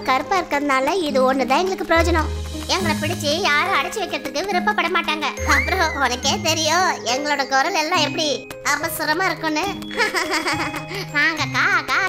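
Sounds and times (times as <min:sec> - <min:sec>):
light children's music: 0:00.0 - 0:12.0
cartoon voice giggling and chattering: 0:10.0 - 0:12.0.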